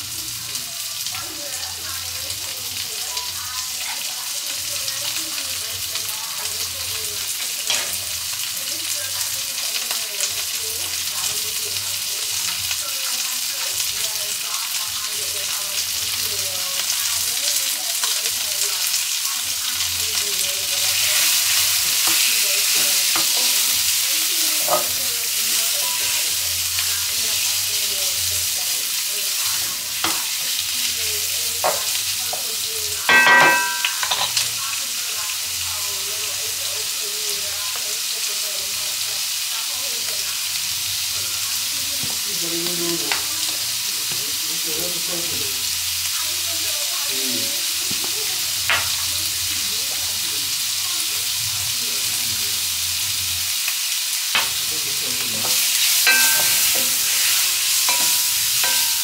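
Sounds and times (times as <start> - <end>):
meat sizzling in a frying pan: 0.0 - 59.0.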